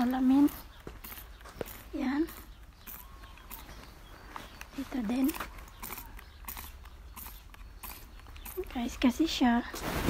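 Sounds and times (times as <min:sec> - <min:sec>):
spray bottle hissing squirts: 0:00.5 - 0:03.8, 0:05.5 - 0:08.7.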